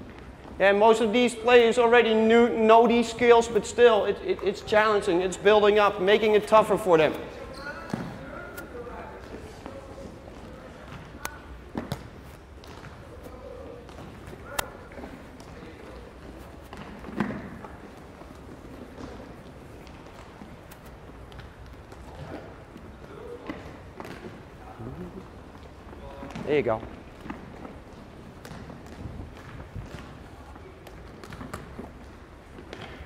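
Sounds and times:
balls thumping on wooden floor: 13.8 - 17.9
faint voices: 24.5 - 25.4.

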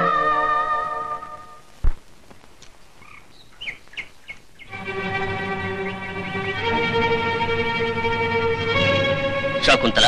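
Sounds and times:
birds chirping: 0.0 - 10.0
faint background hiss: 0.0 - 10.0.

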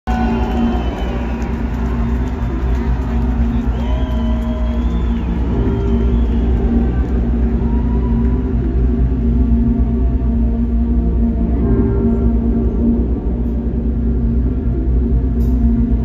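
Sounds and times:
live concert rumble: 0.1 - 16.0.

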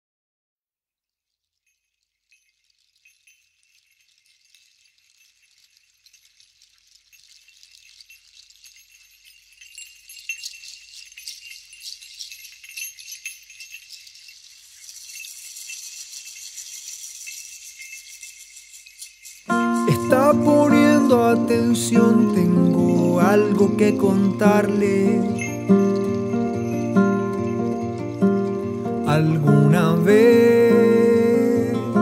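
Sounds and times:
jingling metallic percussion: 1.3 - 32.0.

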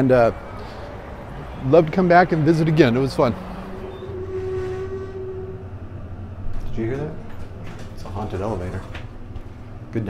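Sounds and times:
eerie held elevator tone: 0.0 - 10.0
low steady hum: 0.0 - 10.0.

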